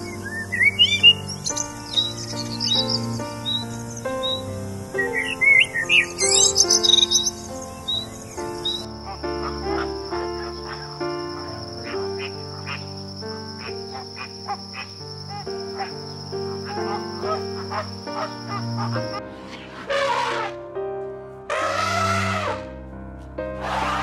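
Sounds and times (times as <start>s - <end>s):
background piano music: 0.0s - 24.0s
songbird chirping: 0.0s - 24.0s.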